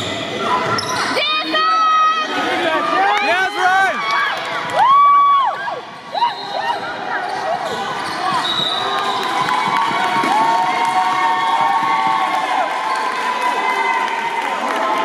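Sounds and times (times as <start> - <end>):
sneakers squeaking on gym floor: 6.3 - 9.2.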